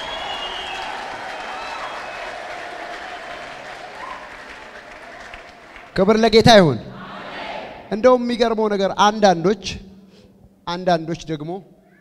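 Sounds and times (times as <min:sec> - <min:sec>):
congregation applauding: 0:00.0 - 0:06.2.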